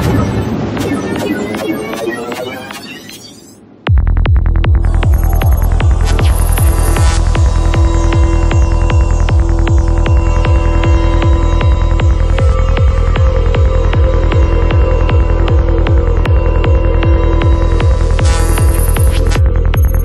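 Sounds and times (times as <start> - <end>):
kick drum: 3.9 - 11.0
pulsing bassline: 3.9 - 20.0.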